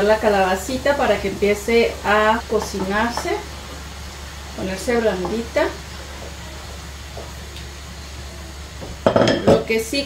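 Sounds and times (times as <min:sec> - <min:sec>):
vegetables sizzling in a pan: 0:00.0 - 0:10.0
spoon stirring vegetables: 0:02.5 - 0:03.9.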